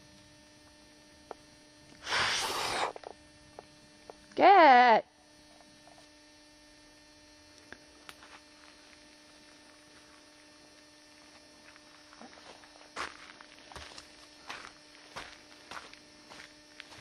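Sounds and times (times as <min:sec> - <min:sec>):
steady electrical hum: 0:00.0 - 0:17.0.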